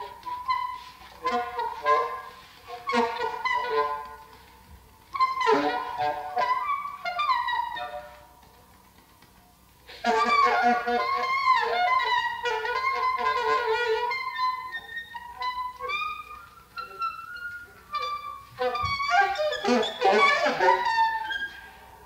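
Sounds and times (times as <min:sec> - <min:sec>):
alto saxophone improvising: 0:00.0 - 0:09.2, 0:09.8 - 0:22.0.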